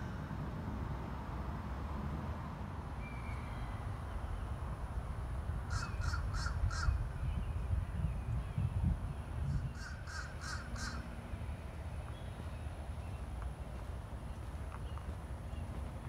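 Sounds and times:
bird calling: 0:05.7 - 0:07.1, 0:09.5 - 0:11.1.

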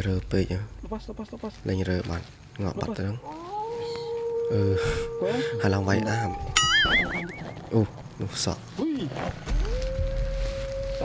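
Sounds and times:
long wailing tone: 0:03.2 - 0:08.0, 0:09.6 - 0:11.0.

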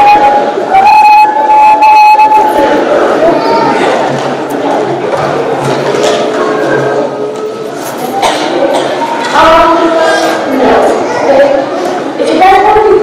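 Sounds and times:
hall noise: 0:00.0 - 0:13.0.

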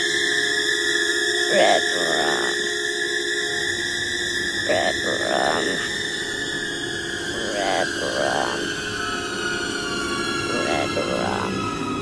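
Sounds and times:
eerie film score drone: 0:00.0 - 0:12.0
child speaking: 0:01.5 - 0:02.6, 0:04.7 - 0:05.9, 0:07.3 - 0:08.7, 0:10.5 - 0:11.6.

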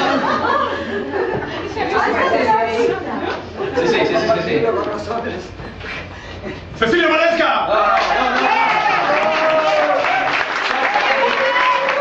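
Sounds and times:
group chatter: 0:00.0 - 0:06.1.

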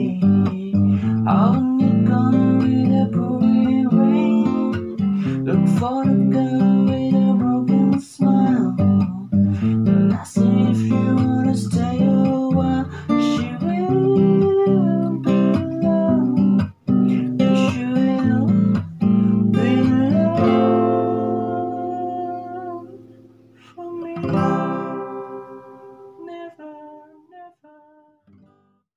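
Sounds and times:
acoustic guitar strumming chords: 0:00.0 - 0:27.4.

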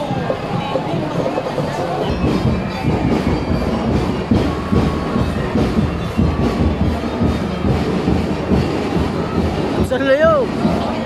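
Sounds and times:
crowd din: 0:00.0 - 0:11.0
vehicle engines rumbling: 0:00.0 - 0:11.0.

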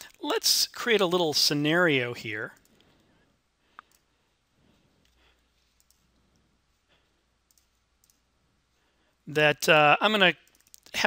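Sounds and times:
computer mouse clicks: 0:03.7 - 0:04.1, 0:05.0 - 0:06.5, 0:07.4 - 0:08.3, 0:10.4 - 0:11.0.

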